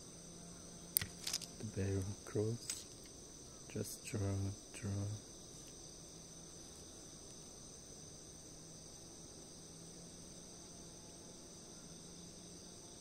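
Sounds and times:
high-pitched insect chorus: 0:00.0 - 0:13.0.

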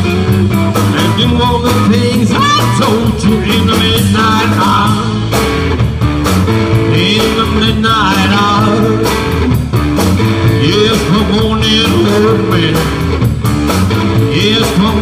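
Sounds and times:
bass: 0:00.0 - 0:15.0
drum beat: 0:00.0 - 0:15.0
electric guitar: 0:00.0 - 0:15.0
person singing: 0:00.8 - 0:05.2, 0:06.8 - 0:09.4, 0:10.5 - 0:13.1, 0:14.1 - 0:15.0.

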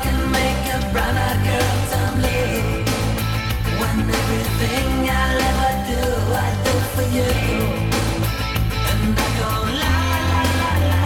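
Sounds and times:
drums: 0:00.0 - 0:11.0
electric bass guitar: 0:00.0 - 0:11.0
electric guitar: 0:00.0 - 0:11.0
pop-rock backing music: 0:00.0 - 0:11.0.

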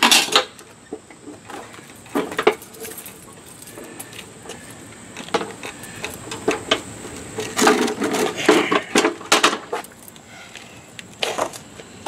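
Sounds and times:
lawn mower frame clanking: 0:00.0 - 0:10.2.

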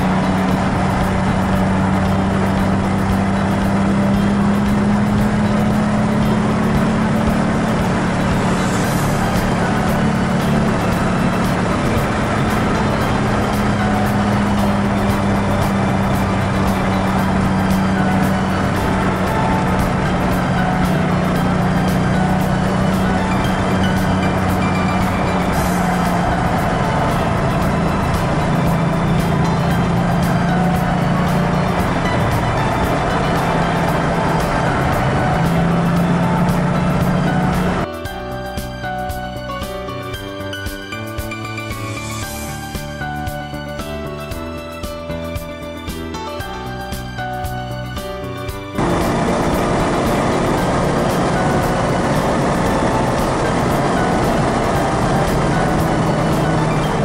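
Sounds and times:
car engine droning: 0:00.0 - 0:37.9, 0:48.7 - 0:57.0
tyres hissing on wet pavement: 0:07.9 - 0:37.8.

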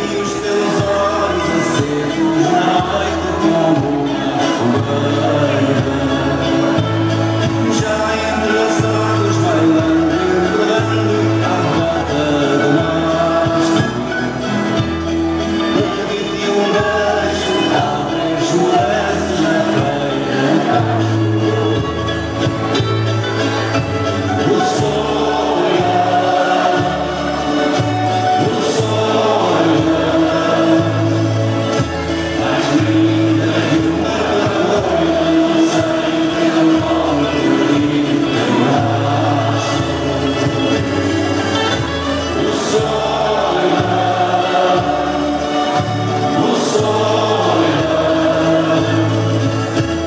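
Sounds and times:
folk dance accompaniment: 0:00.0 - 0:50.0
group of voices singing: 0:00.0 - 0:50.0.

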